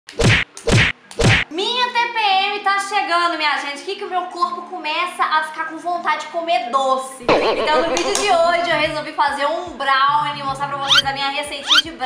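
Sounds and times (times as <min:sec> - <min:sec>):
loud blunt hits: 0:00.2 - 0:01.5, 0:07.3 - 0:08.4
person speaking: 0:07.2 - 0:08.6.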